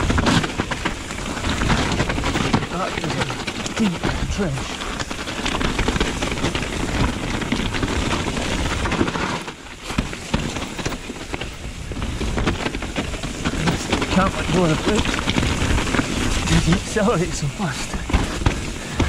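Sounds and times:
bike rattling over rough ground: 0.0 - 19.0
bike tyres and wind rushing: 0.0 - 19.0
person speaking: 2.7 - 4.8, 13.6 - 15.0, 16.5 - 18.4.

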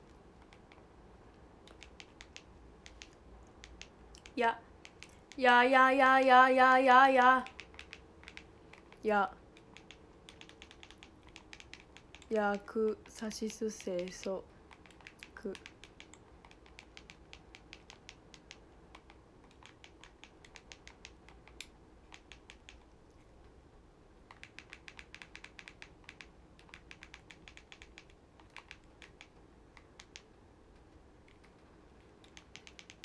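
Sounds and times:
faint typing clicks: 1.6 - 5.5, 7.4 - 22.9, 24.3 - 33.0.

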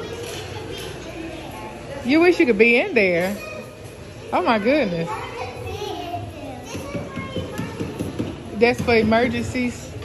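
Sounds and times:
children's voices: 0.0 - 2.4, 3.2 - 8.5
background chatter: 0.0 - 10.0.

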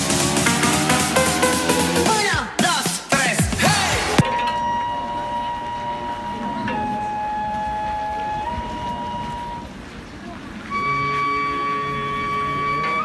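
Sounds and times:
electronic dance music: 0.0 - 4.3
held wind instrument note: 4.2 - 13.0.

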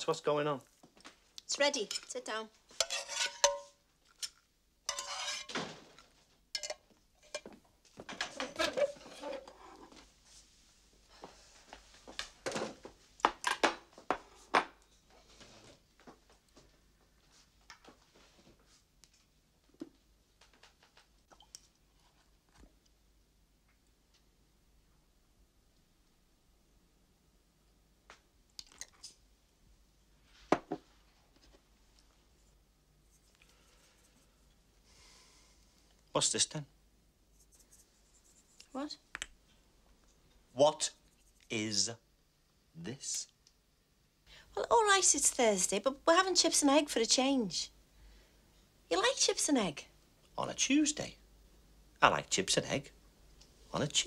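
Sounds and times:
spatula scraping frying pan: 1.8 - 4.3, 4.9 - 5.6, 8.3 - 10.0
pan and plates clinking: 2.8 - 5.7, 6.6 - 7.5.

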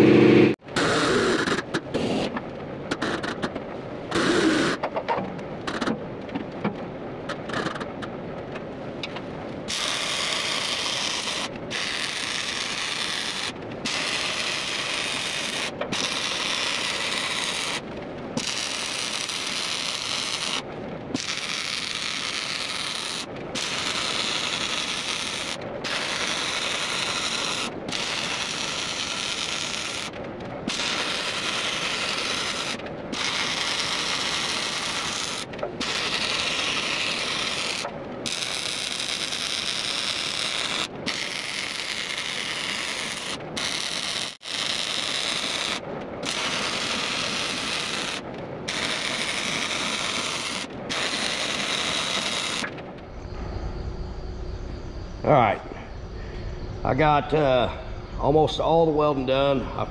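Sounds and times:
arc welder crackling: 9.6 - 53.2.

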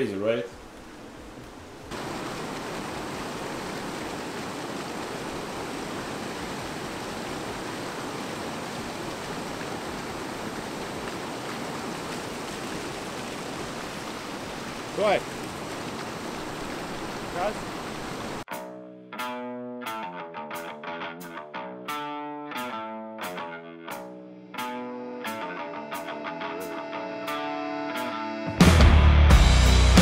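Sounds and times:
river rapids rushing: 1.9 - 18.5.

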